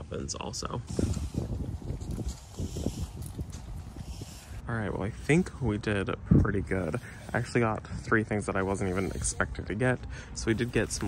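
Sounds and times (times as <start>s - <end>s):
wind rumbling on microphone: 0.0s - 11.0s.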